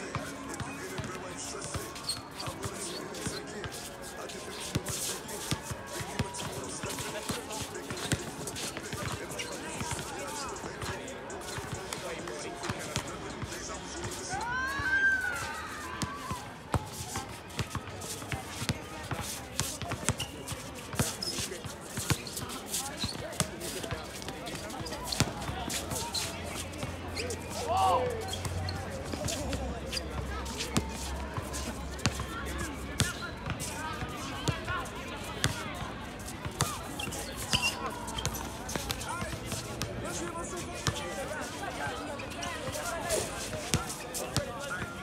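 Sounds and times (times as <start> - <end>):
players calling out: 25.7 - 33.6.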